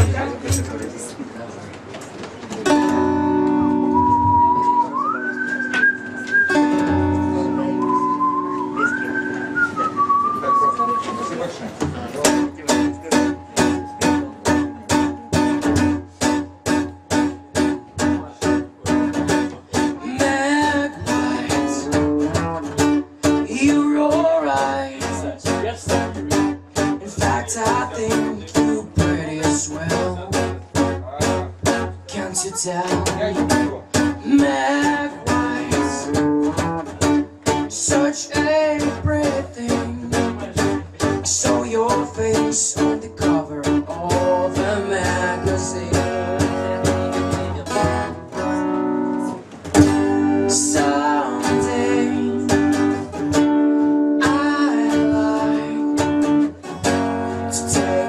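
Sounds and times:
acoustic guitar strumming: 0.0s - 1.1s, 2.6s - 58.0s
person whistling: 3.9s - 11.5s
person singing: 13.1s - 30.5s, 32.1s - 47.6s, 49.9s - 53.0s, 54.2s - 56.5s, 57.3s - 58.0s.

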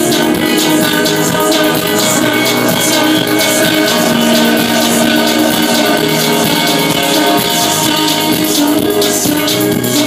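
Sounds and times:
live electronic dance music: 0.0s - 10.0s
low synth note: 1.7s - 8.5s.

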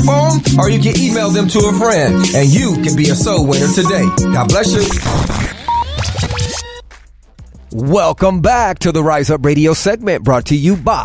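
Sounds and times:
turntable scratching: 0.0s - 7.8s
hip-hop radio jingle: 0.0s - 11.0s.

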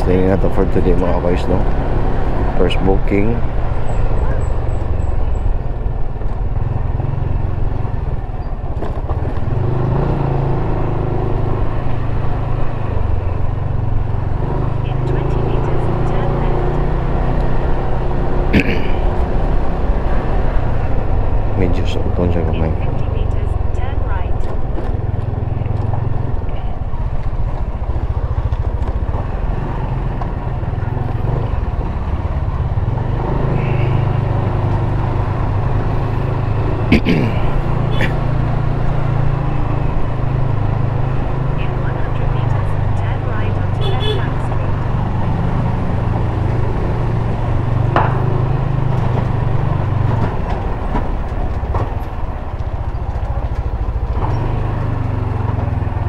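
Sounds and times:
motorcycle engine running: 0.0s - 56.0s.

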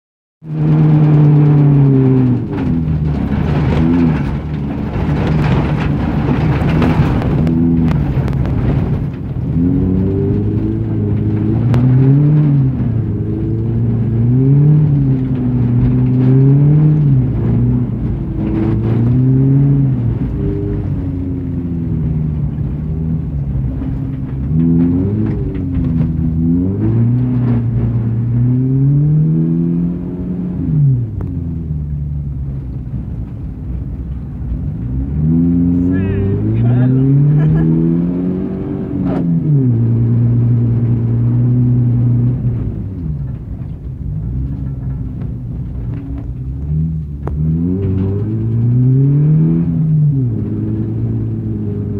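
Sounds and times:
car engine revving: 0.4s - 51.9s.

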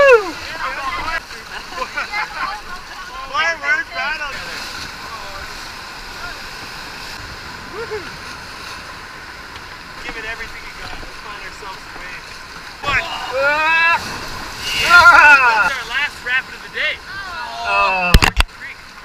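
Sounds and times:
people shouting and whooping: 0.0s - 0.6s, 7.7s - 8.1s, 12.8s - 15.8s, 17.1s - 18.2s
river rapids rushing: 0.0s - 19.0s.

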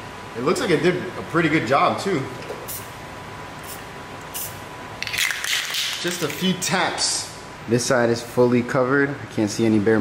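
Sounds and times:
low steady background hiss: 0.0s - 10.0s.

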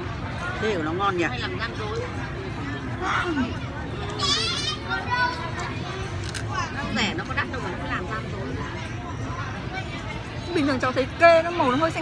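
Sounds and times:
child's high-pitched voice: 4.2s - 5.8s.

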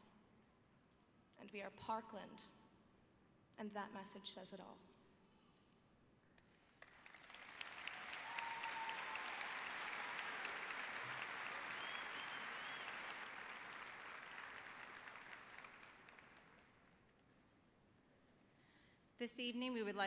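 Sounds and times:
audience applauding: 6.6s - 16.9s.

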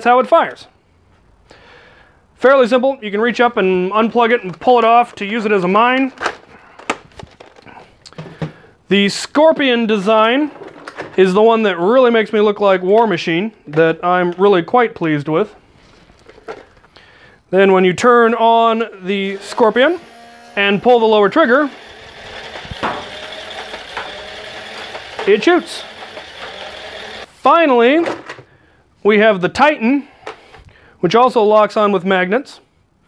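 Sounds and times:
plastic toy rustling: 4.2s - 8.5s, 15.6s - 17.0s, 19.1s - 27.3s.

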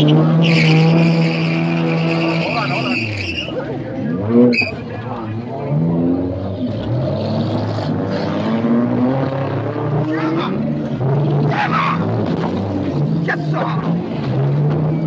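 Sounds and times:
race car engine revving: 0.0s - 15.0s.

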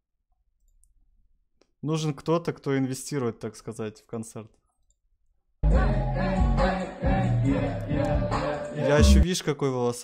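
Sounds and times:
man talking: 1.8s - 4.6s, 8.8s - 10.0s.

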